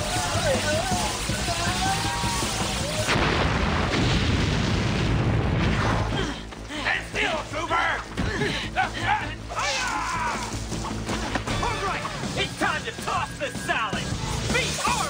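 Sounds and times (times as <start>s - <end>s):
soundtrack music: 0.0s - 4.2s, 5.1s - 15.0s
rumbling boom: 2.1s - 6.2s.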